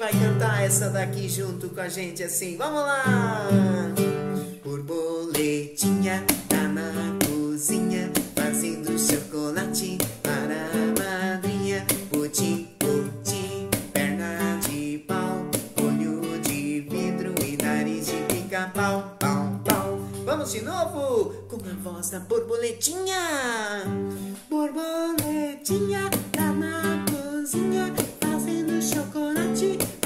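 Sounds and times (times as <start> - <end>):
acoustic guitar strumming: 0.0 - 30.0.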